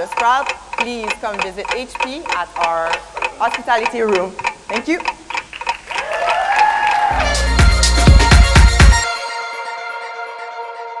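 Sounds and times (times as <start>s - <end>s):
clock ticking: 0.0s - 6.7s, 7.6s - 9.0s
light applause: 5.8s - 7.3s.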